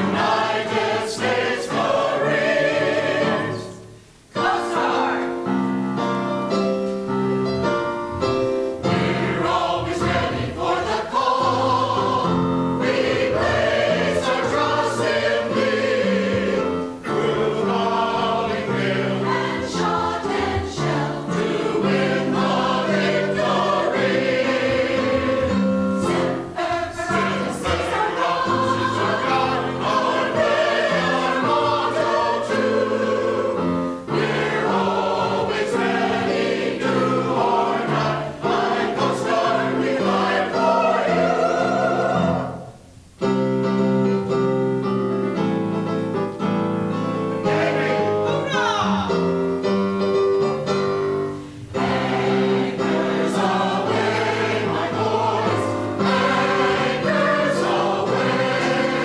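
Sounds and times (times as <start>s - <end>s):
mixed choir singing: 0.0s - 5.5s, 8.5s - 42.8s, 47.3s - 48.9s, 51.7s - 59.0s.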